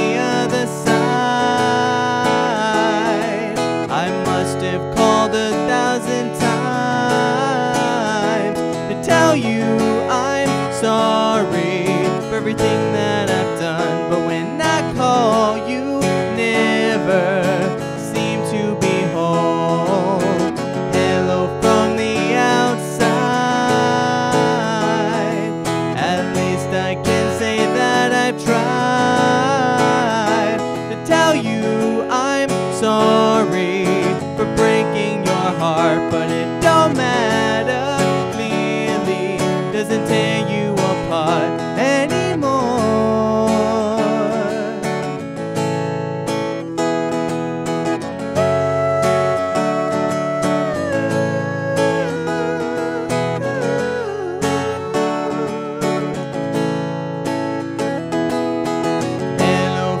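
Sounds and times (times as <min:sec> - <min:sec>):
man singing: 0:00.0 - 0:45.2, 0:48.2 - 0:56.7, 0:59.0 - 1:00.0
acoustic guitar strumming chords: 0:00.0 - 1:00.0.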